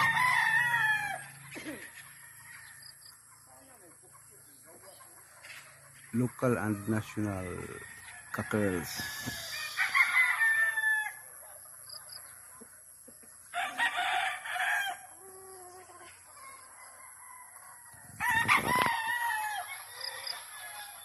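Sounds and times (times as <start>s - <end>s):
cockerels crowing: 0.0s - 3.0s, 6.5s - 11.3s, 13.5s - 21.0s.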